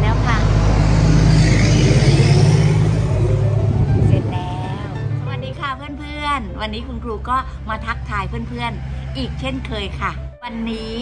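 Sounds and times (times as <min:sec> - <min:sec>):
vehicle passing by: 0:00.0 - 0:06.1, 0:06.9 - 0:11.0.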